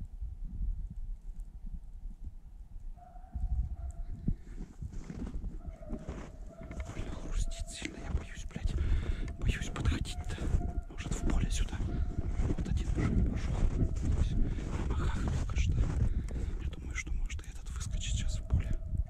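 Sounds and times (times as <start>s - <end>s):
wind rumble on microphone: 0.0s - 19.0s
footsteps crunching through snow: 4.4s - 16.7s.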